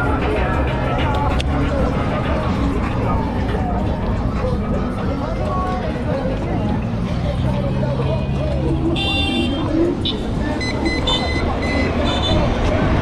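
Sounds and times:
road and wind rumble: 0.0s - 13.0s
voices: 0.0s - 13.0s
high-pitched electronic beeps: 10.5s - 12.3s.

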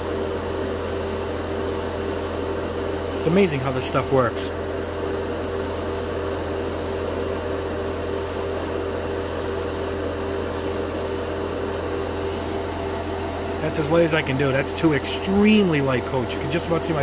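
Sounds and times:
spray booth fan drone: 0.0s - 17.0s.

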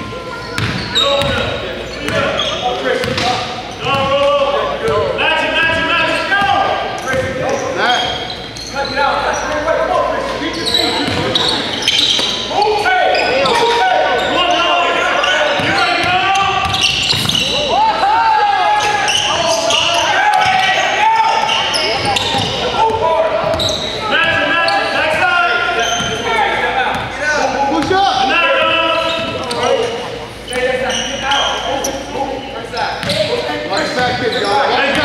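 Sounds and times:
players calling out: 0.0s - 35.0s.

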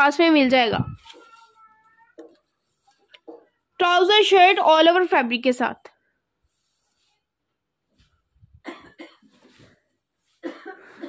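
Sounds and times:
short coughs: 8.6s - 9.7s, 10.4s - 11.0s.

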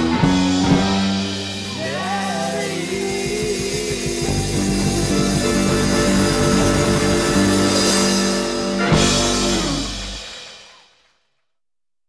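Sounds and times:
rock band playing live: 0.0s - 10.9s.

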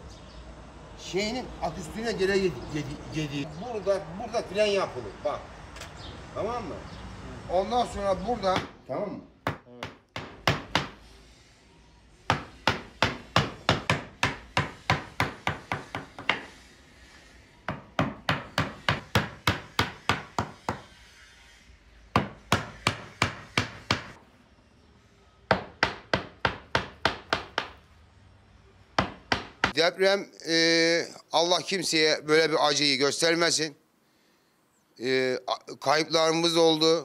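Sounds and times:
mallet tapping chisel into wood: 12.3s - 16.5s, 17.7s - 20.9s, 29.0s - 29.8s.

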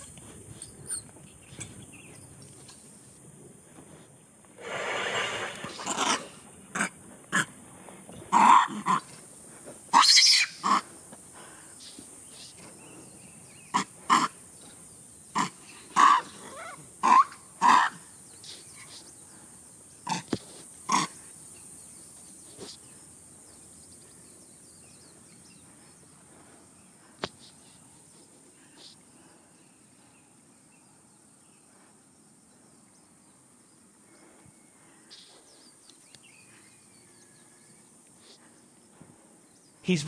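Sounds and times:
monkeys giving harsh calls: 8.3s - 9.1s, 9.9s - 10.9s, 13.7s - 14.4s, 15.4s - 18.0s.

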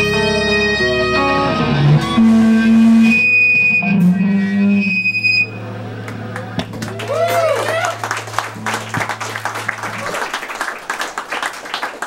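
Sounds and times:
electric guitars ringing: 0.0s - 11.2s
low amp hum: 1.1s - 10.9s
high steady whine: 1.7s - 6.7s.

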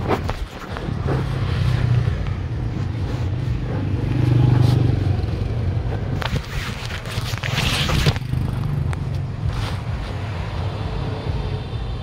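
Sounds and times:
street traffic: 0.0s - 12.0s
vehicle engine running: 0.7s - 12.0s.

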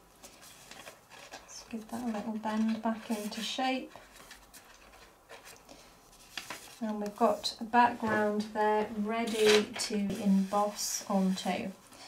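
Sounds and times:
card rustling: 0.2s - 7.4s, 9.2s - 10.8s.

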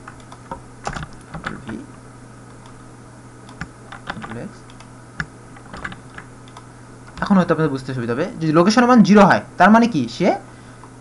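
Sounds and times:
computer keyboard keystrokes: 3.5s - 7.3s.

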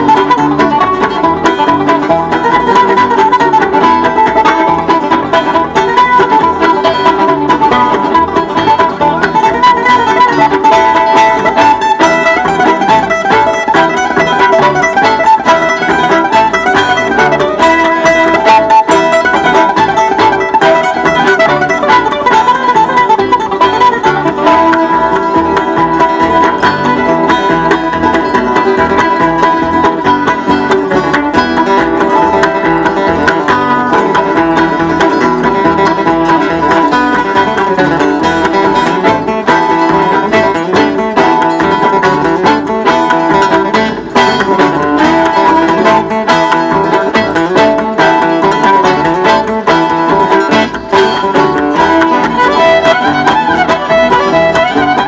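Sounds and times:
fiddle: 0.0s - 55.0s
mandolin: 0.0s - 55.0s
plucked rhythm strings: 0.0s - 55.0s.

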